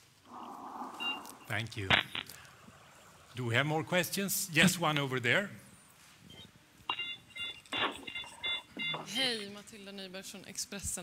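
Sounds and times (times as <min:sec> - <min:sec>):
electronic beeping: 0:00.4 - 0:03.1, 0:06.2 - 0:09.5.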